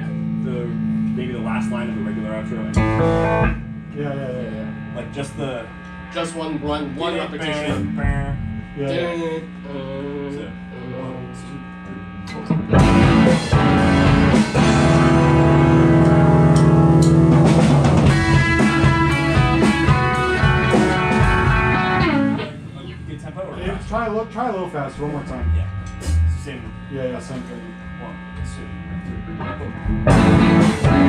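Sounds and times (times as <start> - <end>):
electric guitars playing rock: 0.0 - 9.0, 12.0 - 24.4, 25.0 - 31.0
amplifier hum: 0.0 - 31.0.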